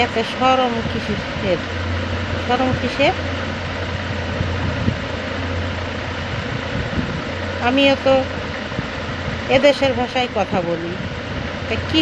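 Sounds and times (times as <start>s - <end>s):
constant background noise: 0.0s - 12.0s
steady low hum: 0.0s - 12.0s.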